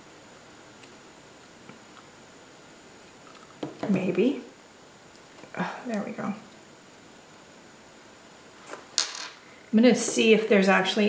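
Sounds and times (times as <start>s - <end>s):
quiet room hiss: 0.0s - 11.0s.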